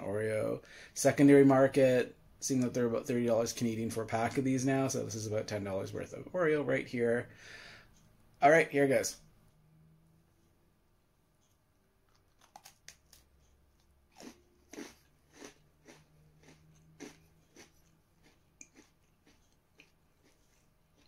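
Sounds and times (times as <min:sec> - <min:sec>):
crunchy cookie chewing: 0:12.0 - 0:21.0.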